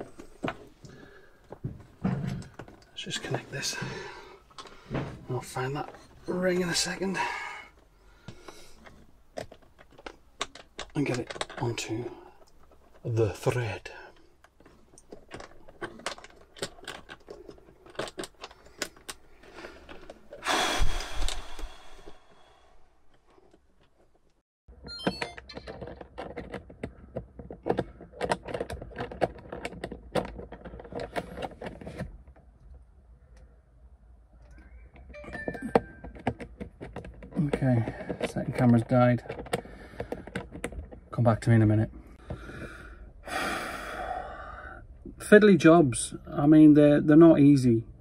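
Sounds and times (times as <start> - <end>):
small clicks taps and rattles: 8.5 - 19.2, 25.3 - 32.5, 35.8 - 41.3.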